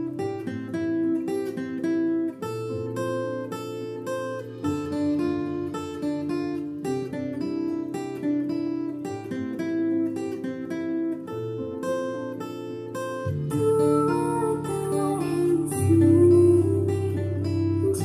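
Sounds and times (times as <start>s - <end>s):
fingerpicked acoustic guitar: 0.0s - 18.0s.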